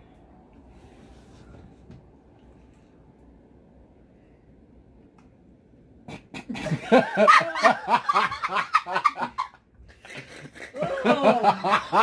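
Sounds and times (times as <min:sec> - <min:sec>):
woman and man laughing: 0:06.5 - 0:12.0.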